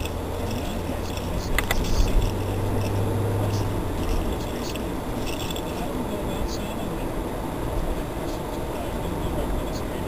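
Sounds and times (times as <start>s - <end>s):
sharp clicks: 0.0s - 3.0s
engine and tyre drone: 0.0s - 10.0s.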